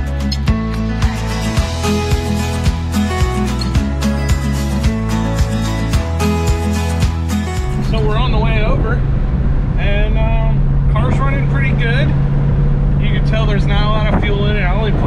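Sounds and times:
music: 0.0 - 9.2
car engine drone from inside cabin: 7.6 - 15.0
man talking: 7.8 - 9.0, 9.8 - 12.2, 13.0 - 15.0.

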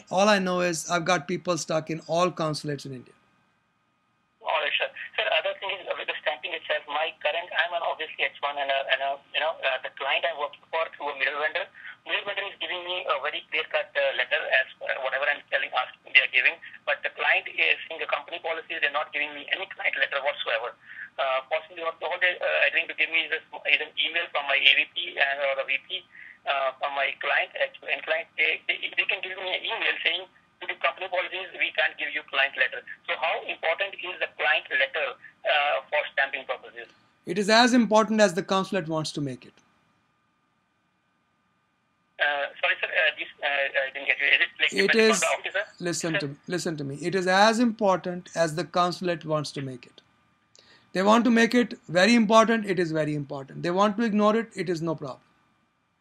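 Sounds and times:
person speaking over telephone: 0.0 - 3.0, 4.4 - 39.5, 42.2 - 50.0.

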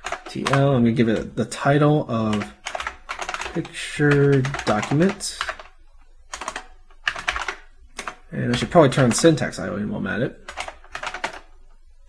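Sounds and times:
computer keyboard typing: 0.0 - 1.4, 2.2 - 9.4, 10.4 - 11.5.

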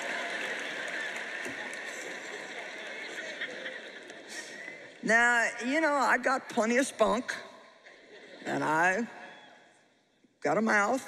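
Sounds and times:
audience laughing: 0.0 - 5.0, 7.8 - 9.3.

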